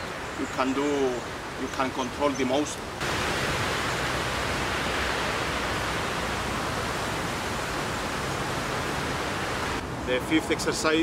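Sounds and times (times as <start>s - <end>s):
steady hiss: 0.0s - 10.2s.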